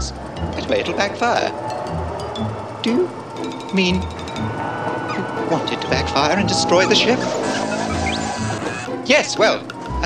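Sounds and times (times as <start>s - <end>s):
background music: 0.0s - 10.0s
robot electronic warbling chirps: 1.8s - 9.0s.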